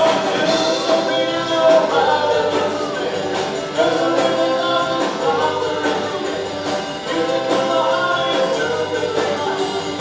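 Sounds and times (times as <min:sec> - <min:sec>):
live band playing: 0:00.0 - 0:10.0
person singing: 0:00.0 - 0:10.0.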